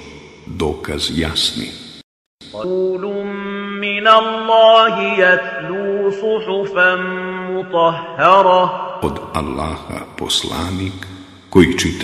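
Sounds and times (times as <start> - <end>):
person chanting melodically: 0.0 - 1.7, 2.4 - 12.0.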